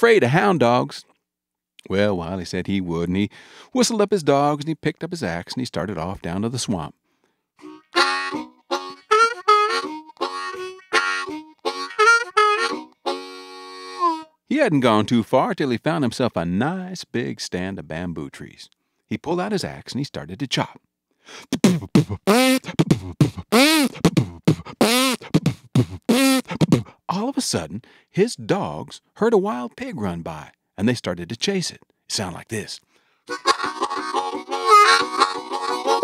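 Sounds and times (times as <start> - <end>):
harmonica playing lively tune: 7.6 - 15.1, 21.5 - 27.0, 33.3 - 36.0
man imitating axe chops: 21.3 - 27.0, 33.3 - 36.0.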